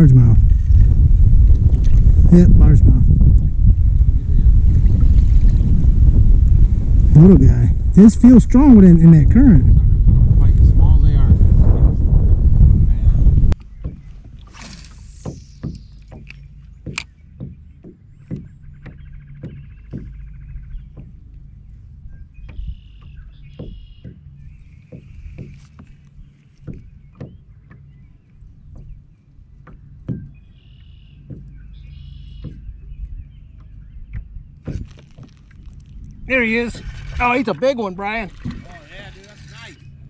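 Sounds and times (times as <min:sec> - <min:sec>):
wind rushing on microphone: 0:00.0 - 0:14.5
low rumble of water and wind: 0:00.0 - 0:40.0
waves lapping against kayak hull: 0:03.6 - 0:07.1, 0:13.5 - 0:32.7, 0:33.5 - 0:39.9.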